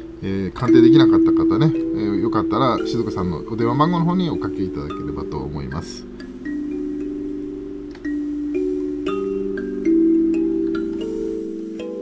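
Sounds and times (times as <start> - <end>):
slow soft instrumental music: 0.0 - 12.0.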